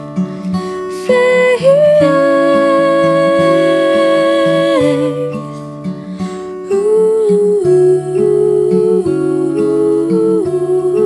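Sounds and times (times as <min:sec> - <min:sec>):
acoustic guitar: 0:00.0 - 0:11.0
woman humming: 0:01.6 - 0:05.5, 0:06.7 - 0:11.0.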